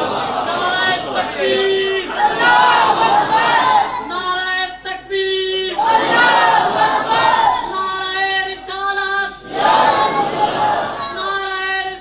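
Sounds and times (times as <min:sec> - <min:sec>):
man singing chant: 0:07.7 - 0:09.5, 0:10.8 - 0:12.0.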